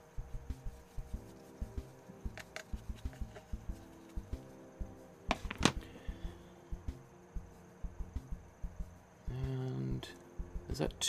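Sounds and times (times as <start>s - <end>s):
paintbrush tapping on plastic palette: 2.3s - 4.4s, 5.3s - 5.9s.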